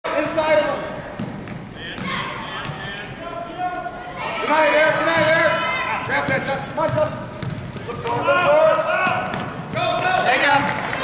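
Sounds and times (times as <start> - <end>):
basketball dribbling on hardwood: 6.2 - 10.8.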